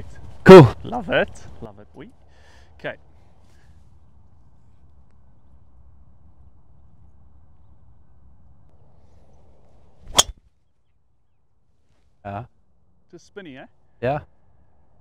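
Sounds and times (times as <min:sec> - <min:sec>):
golf club striking ball: 0:10.1 - 0:10.4.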